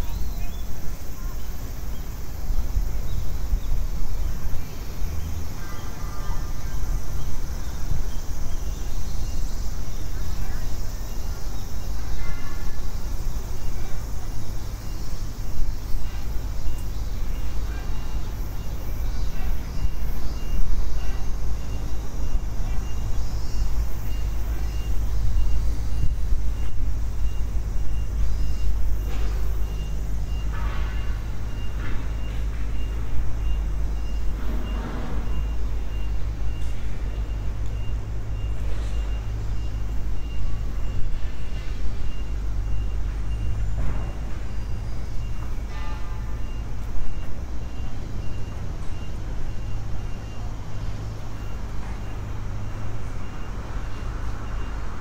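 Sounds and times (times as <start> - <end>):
faint high beeping: 0.0 - 55.0
traffic rumble: 0.0 - 55.0.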